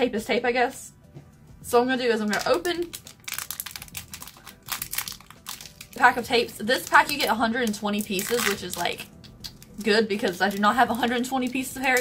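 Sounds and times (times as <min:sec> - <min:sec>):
plastic packet crinkling: 0:02.3 - 0:12.0.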